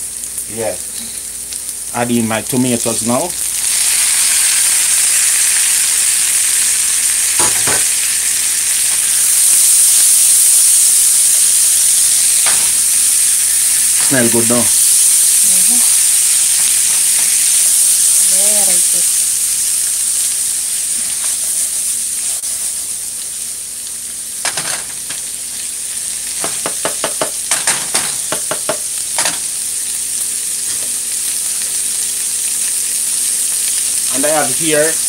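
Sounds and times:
food sizzling in a frying pan: 0.0s - 35.0s
spatula knocking against pan: 26.4s - 28.8s.

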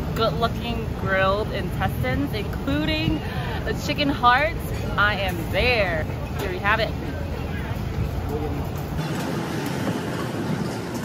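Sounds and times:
passers-by chatter: 0.0s - 11.0s
traffic hum: 0.0s - 11.0s.

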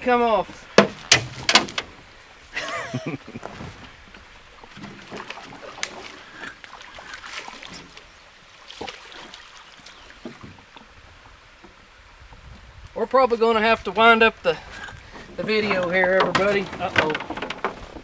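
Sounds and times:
light water noise: 0.0s - 18.0s
knocks and clicks on a boat: 0.8s - 2.0s, 15.2s - 18.0s
man laughing: 2.5s - 3.6s.

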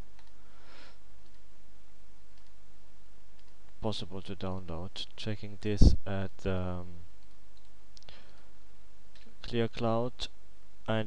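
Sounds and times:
low electrical hum: 0.0s - 11.0s
computer mouse click: 0.2s - 0.4s, 1.2s - 1.4s, 2.3s - 2.6s, 3.4s - 3.6s, 7.2s - 8.4s
man speaking: 3.8s - 7.0s, 9.4s - 10.3s.

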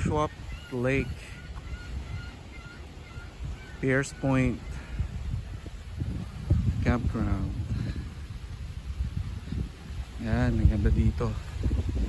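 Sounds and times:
birds calling faintly: 0.0s - 8.5s
low wind rumble: 0.0s - 12.0s.

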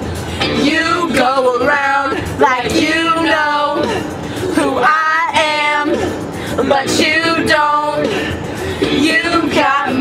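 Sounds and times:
pop song playing: 0.0s - 10.0s
young women singing loudly: 0.4s - 10.0s.

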